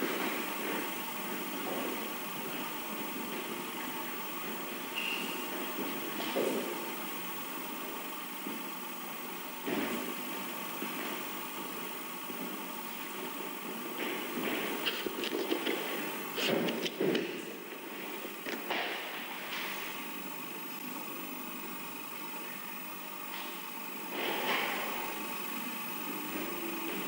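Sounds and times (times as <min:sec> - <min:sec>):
room noise hum: 0:00.0 - 0:27.0.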